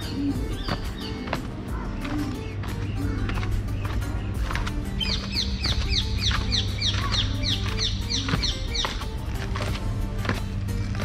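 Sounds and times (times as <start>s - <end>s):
bird chirping rapidly: 0.0s - 9.2s
background music: 0.0s - 11.0s.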